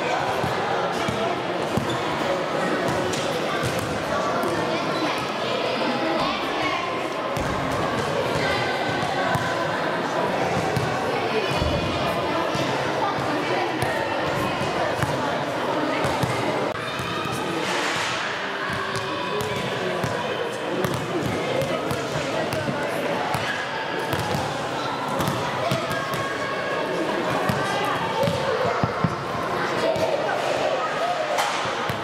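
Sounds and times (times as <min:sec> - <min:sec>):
children chattering: 0:00.0 - 0:17.7, 0:18.4 - 0:32.0.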